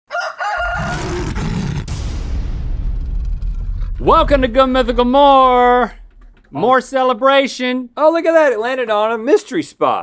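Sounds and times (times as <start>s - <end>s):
rooster-like crowing call: 0.1s - 1.2s
sharp crack: 1.2s - 8.0s
low steady rumble: 1.9s - 8.0s.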